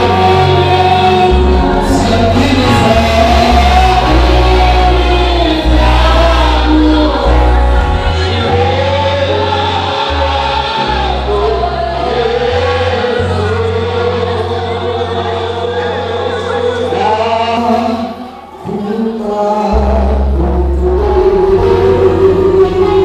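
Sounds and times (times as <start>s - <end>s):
amplified instruments: 0.0s - 23.0s
choir and congregation singing: 0.0s - 23.0s.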